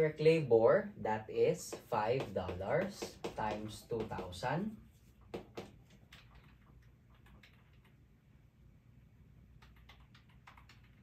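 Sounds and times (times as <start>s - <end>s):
low room hum: 0.0s - 11.0s
calculator keys clicking: 5.9s - 7.9s, 9.6s - 11.0s.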